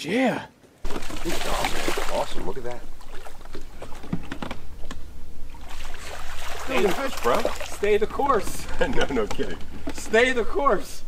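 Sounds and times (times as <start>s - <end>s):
steady low hum: 0.8s - 11.0s.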